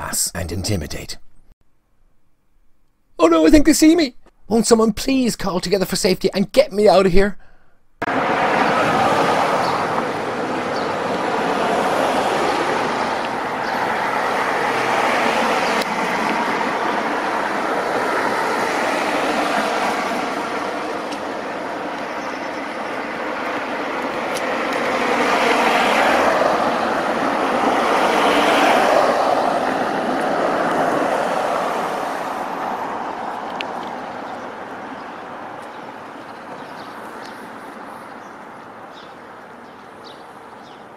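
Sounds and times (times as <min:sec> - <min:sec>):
cars passing on road: 0:08.0 - 0:40.9.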